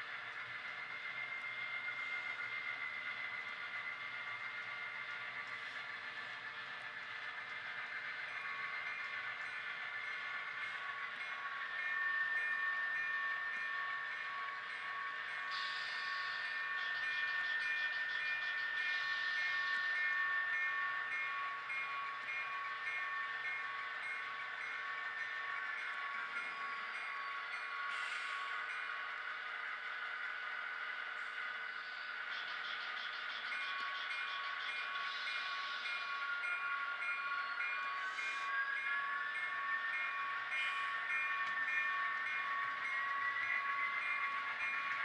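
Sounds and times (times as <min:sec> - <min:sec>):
locomotive bell ringing: 0:00.0 - 0:45.0
model diesel locomotive running: 0:00.0 - 0:45.0.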